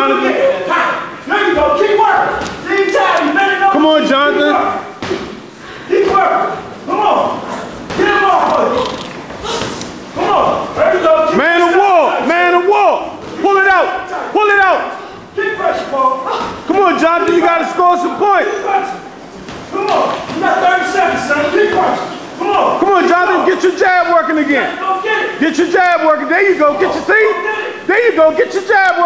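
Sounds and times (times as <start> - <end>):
men calling and shouting: 0.0 - 29.0.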